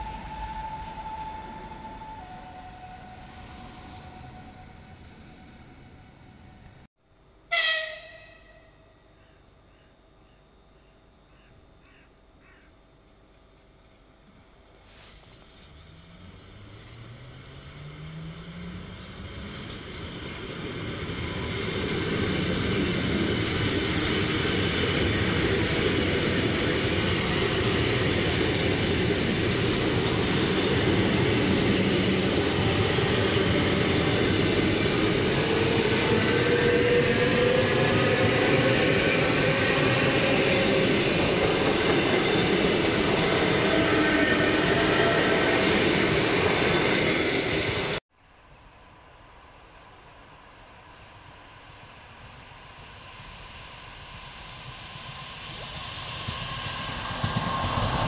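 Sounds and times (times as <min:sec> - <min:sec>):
train wheels on rails: 0:14.8 - 0:48.0, 0:50.6 - 0:58.0.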